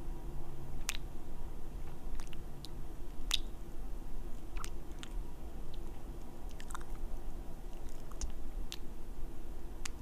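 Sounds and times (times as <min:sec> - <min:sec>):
wet kissing and lip smacks: 0:00.8 - 0:01.1, 0:02.2 - 0:03.5, 0:04.4 - 0:05.9.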